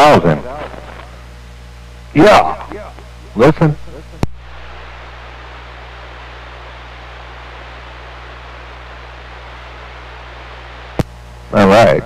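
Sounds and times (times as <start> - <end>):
low steady hum: 0.0 - 12.0
radio static hiss: 0.0 - 12.0.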